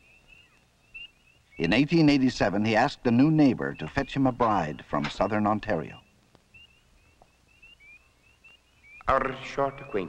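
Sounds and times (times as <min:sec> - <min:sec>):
faint bird chirping: 0:00.0 - 0:10.0.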